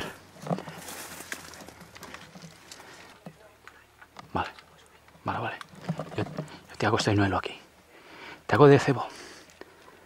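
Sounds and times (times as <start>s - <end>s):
footfalls in undergrowth: 0.0s - 3.2s
branches and brush rustling: 0.0s - 10.0s.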